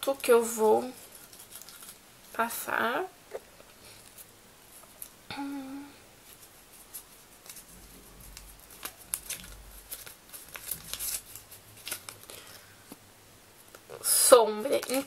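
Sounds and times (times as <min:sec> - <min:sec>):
paper crinkling and rustling: 0:00.0 - 0:02.0, 0:06.2 - 0:13.0, 0:14.6 - 0:15.0.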